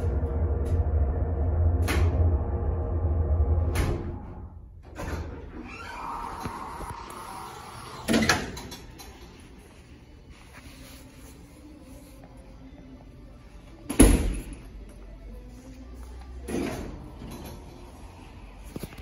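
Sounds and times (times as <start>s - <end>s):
elevator hum: 0.0s - 8.5s
elevator door sliding with whir: 0.0s - 9.0s.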